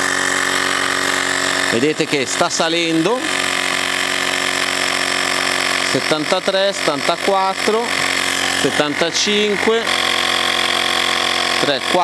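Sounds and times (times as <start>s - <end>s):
tyre inflator compressor running: 0.0s - 12.0s.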